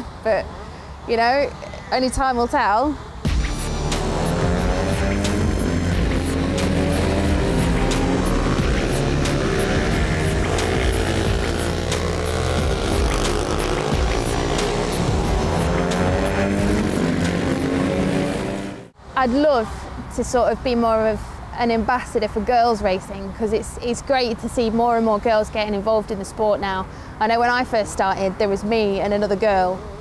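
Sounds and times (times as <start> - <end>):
motorcycles revving: 0.0 - 19.0
background music with steady beat: 3.2 - 18.8.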